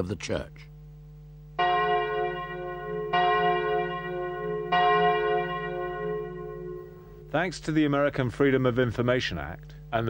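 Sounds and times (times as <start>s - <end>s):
large church bell tolling: 1.6s - 8.1s.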